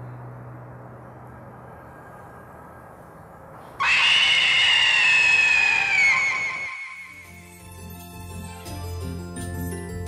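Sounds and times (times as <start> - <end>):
piercing high-pitched shriek: 3.7 - 7.4.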